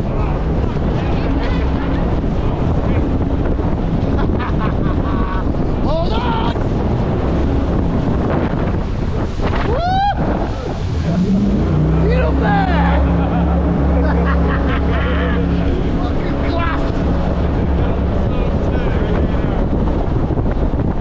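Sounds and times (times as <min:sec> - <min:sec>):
boat engine running hard: 0:00.0 - 0:21.0
wind buffeting microphone: 0:00.0 - 0:21.0.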